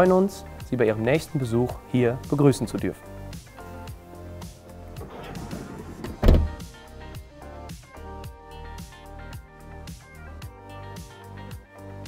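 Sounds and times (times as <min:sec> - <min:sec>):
door closing thud: 0:05.0 - 0:06.6
sliding van door rolling shut: 0:05.0 - 0:06.6.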